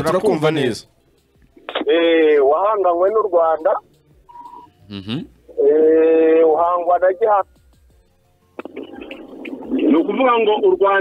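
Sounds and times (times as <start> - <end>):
man speaking: 4.9 - 7.0.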